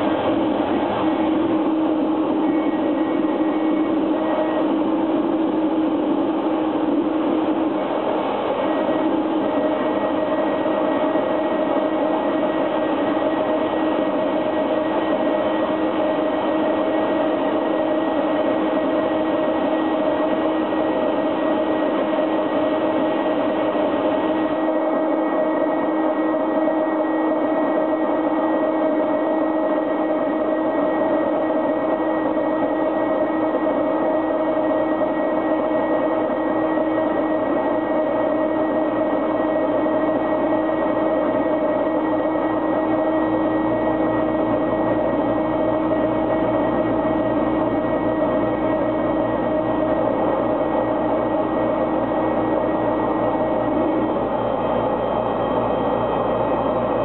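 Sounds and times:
electronic noise music with drones: 0:00.0 - 0:55.8.

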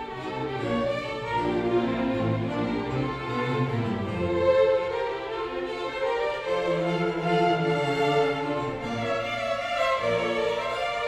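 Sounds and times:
cellos and basses: 0:00.0 - 0:11.0
orchestra bowed strings: 0:00.0 - 0:11.0.

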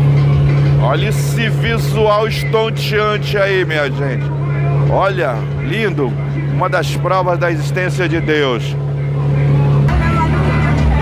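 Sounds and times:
boat engine droning: 0:00.0 - 0:11.0
deep pulsing rumble: 0:00.0 - 0:11.0.

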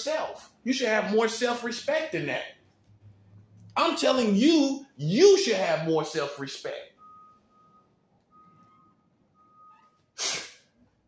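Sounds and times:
faint short beeps: 0:07.0 - 0:10.2
burst of breath on microphone: 0:10.2 - 0:10.7.

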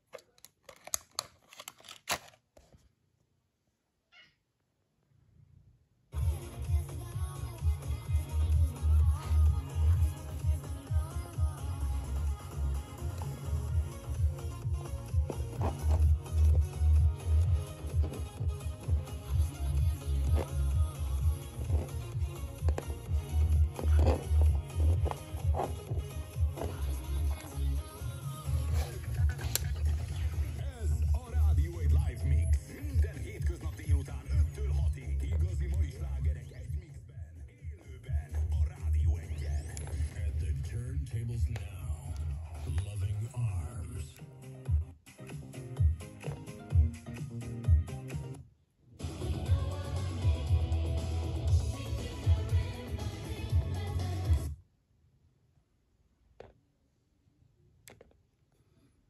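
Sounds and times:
music with rhythmic bass beat: 0:06.2 - 0:40.6, 0:44.2 - 0:48.4, 0:49.0 - 0:54.6.

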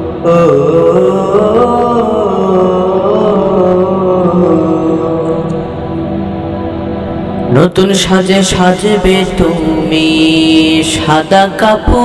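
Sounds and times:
wordless vocal chanting: 0:00.0 - 0:12.0.

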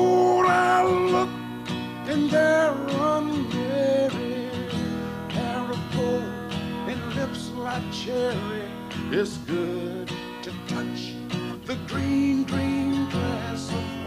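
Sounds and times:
man singing country song: 0:00.0 - 0:14.0
strummed acoustic guitar: 0:00.0 - 0:14.0.

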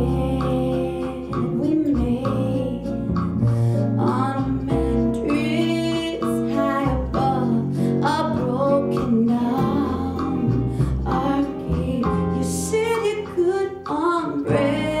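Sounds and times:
woman singing with vibrato: 0:00.0 - 0:03.1, 0:04.0 - 0:15.0
jazz combo playing: 0:00.0 - 0:15.0.

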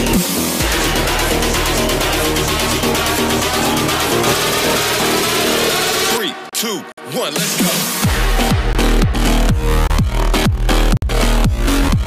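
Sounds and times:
distorted electronic dance music: 0:00.0 - 0:12.0.

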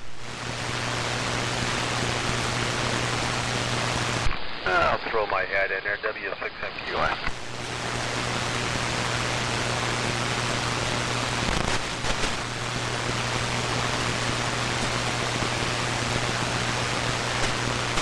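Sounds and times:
radio static hiss: 0:00.0 - 0:18.0
brief crackle: 0:11.4 - 0:12.4, 0:17.4 - 0:18.0.

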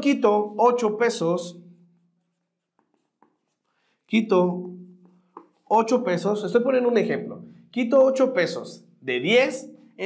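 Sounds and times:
marker writing on whiteboard: 0:01.6 - 0:06.4.

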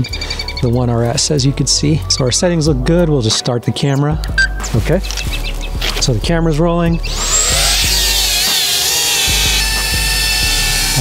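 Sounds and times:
background music with steady beat: 0:00.0 - 0:11.0
drone motors whining: 0:06.9 - 0:11.0.

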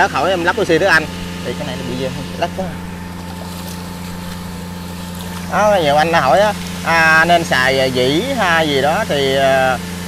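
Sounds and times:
motor humming: 0:00.0 - 0:10.0
steady noise wash: 0:00.1 - 0:09.3.

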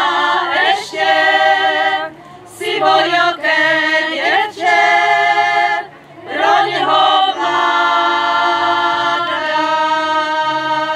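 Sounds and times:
women's choir singing a cappella: 0:00.0 - 0:10.9.

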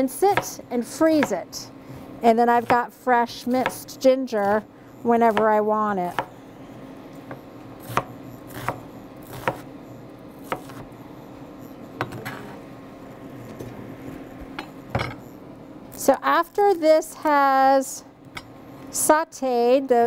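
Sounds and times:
knife chopping on plastic board: 0:00.3 - 0:01.4, 0:03.6 - 0:04.6, 0:05.3 - 0:06.3, 0:07.3 - 0:09.7.

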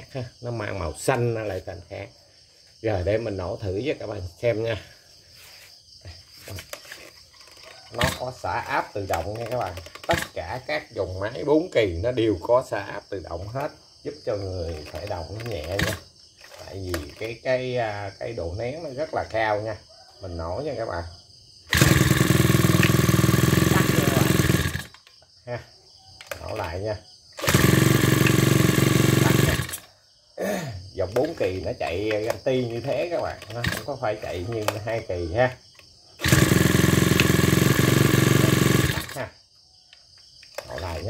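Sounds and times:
brush cutter engine pull-started: 0:06.4 - 0:10.8, 0:14.4 - 0:17.8, 0:21.7 - 0:25.2, 0:26.2 - 0:29.9, 0:31.1 - 0:39.4, 0:40.5 - 0:41.0.

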